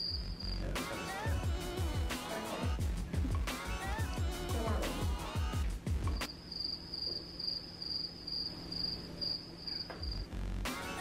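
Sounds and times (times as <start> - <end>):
cricket chirping: 0.0 - 0.8, 6.2 - 10.4
background music: 0.0 - 6.3, 10.3 - 11.0.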